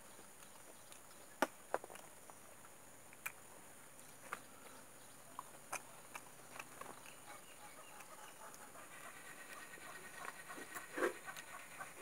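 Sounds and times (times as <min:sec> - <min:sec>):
wet mouth chewing clicks: 0:03.1 - 0:03.4, 0:05.3 - 0:08.7.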